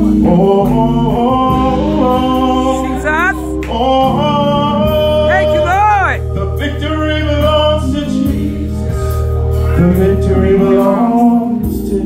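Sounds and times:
instrumental backing: 0.0s - 12.0s
man singing gospel into microphone: 0.0s - 12.0s.

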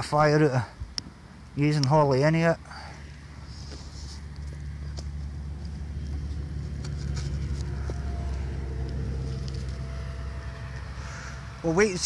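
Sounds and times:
vehicle passing rumble: 2.6s - 12.0s.

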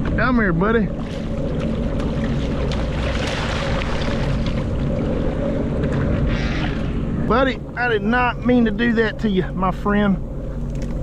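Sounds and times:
water sloshing against hull: 0.0s - 11.0s.

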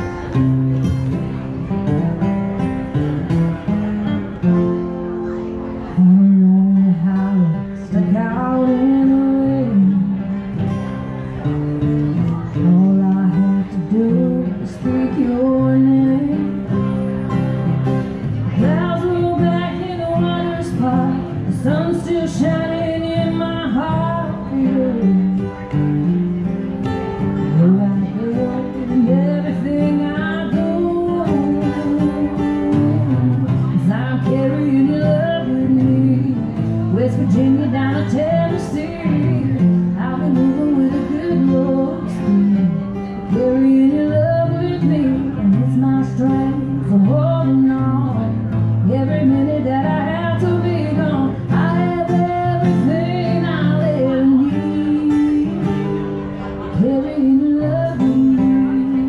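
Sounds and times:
strummed acoustic guitar: 0.0s - 59.0s
woman singing into microphone: 5.9s - 10.7s, 12.2s - 26.2s, 27.2s - 59.0s.

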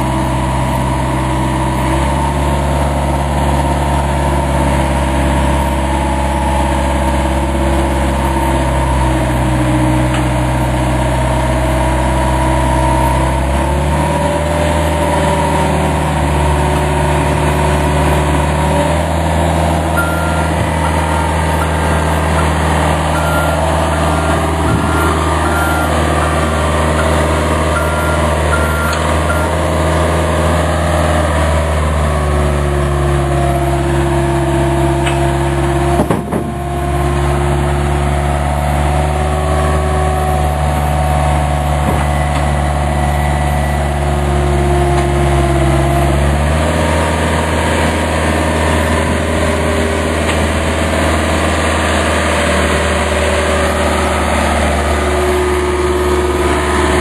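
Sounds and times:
heavy diesel engine running: 0.0s - 57.0s
backup alarm beeping: 19.8s - 29.7s.

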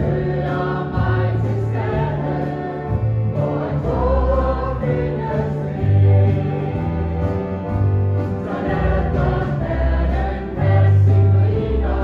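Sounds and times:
choir singing a hymn: 0.0s - 12.0s
instrumental accompaniment: 0.0s - 12.0s.

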